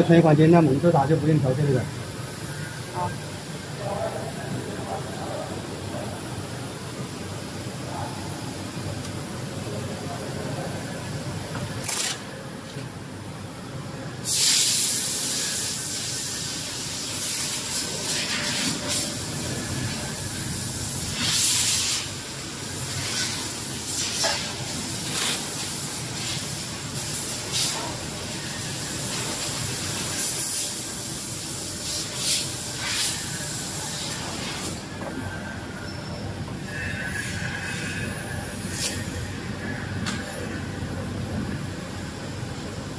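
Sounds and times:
factory machine hum: 0.0 - 42.9
short loud hissing bursts: 14.2 - 19.4, 20.3 - 27.8, 29.4 - 34.8.

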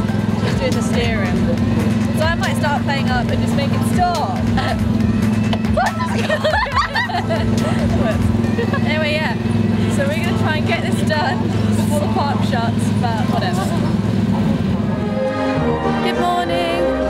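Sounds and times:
indistinct voices talking: 0.0 - 17.0
vehicle engine drone: 0.0 - 17.0.

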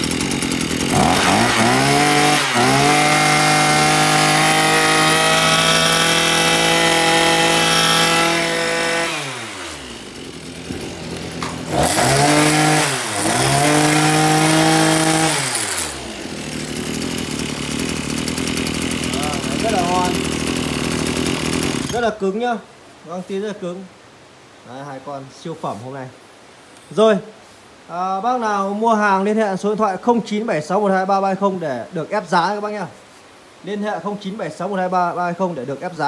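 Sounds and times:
brush cutter engine revving: 0.0 - 22.2.

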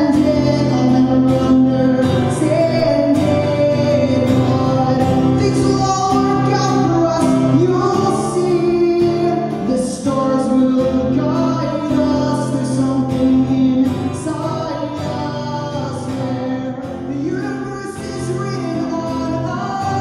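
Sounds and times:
acoustic guitar strumming: 0.0 - 20.0
man singing: 0.0 - 20.0.

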